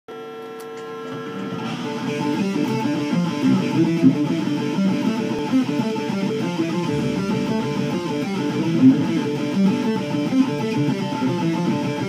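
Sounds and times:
electric guitar notes: 0.4 - 12.0.

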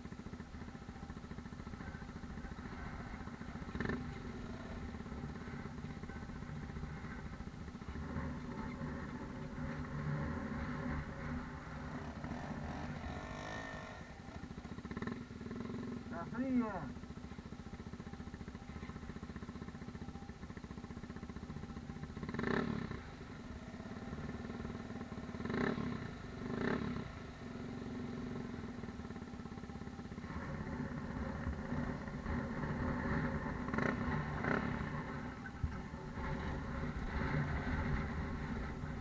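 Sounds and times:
dirt bike engine revving: 2.3 - 17.1, 21.7 - 39.0.

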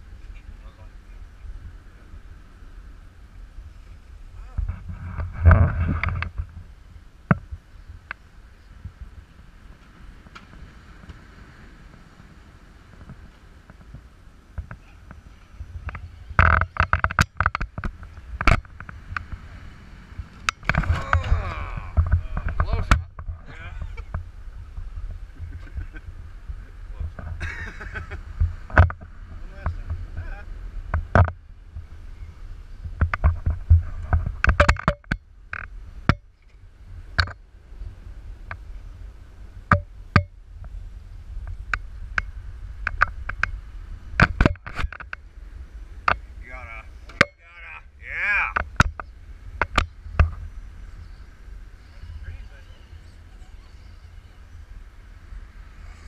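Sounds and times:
low rumble: 12.7 - 34.5.

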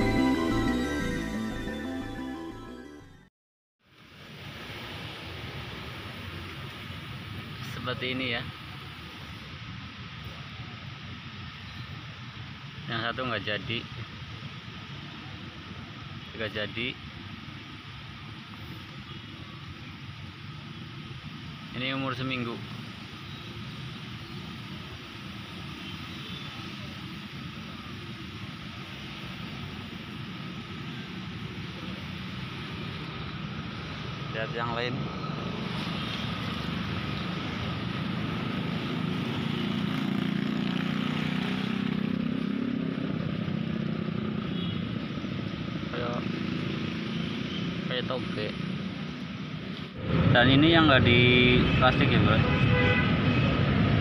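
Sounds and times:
outdoor rumble and hiss: 3.8 - 47.1.

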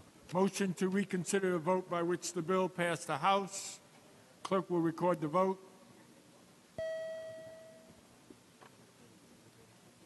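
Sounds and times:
faint room noise: 0.0 - 10.0
single chime tone: 6.8 - 7.9.

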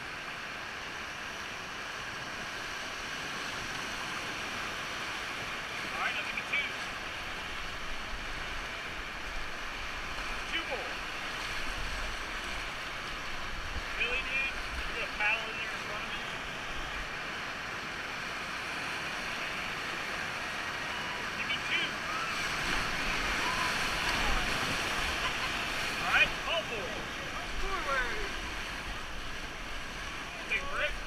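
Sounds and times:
river rapids rushing: 0.0 - 31.0
people calling out: 20.7 - 28.4.

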